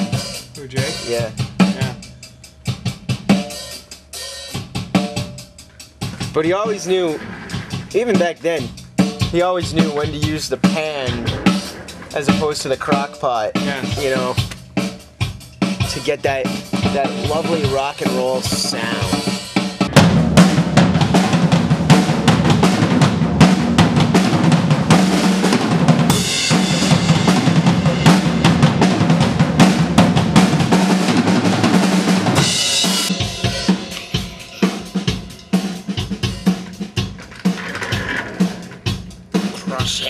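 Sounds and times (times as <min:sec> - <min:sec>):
drum kit playing: 0:00.0 - 0:40.0
cymbal crashes: 0:32.0 - 0:36.6.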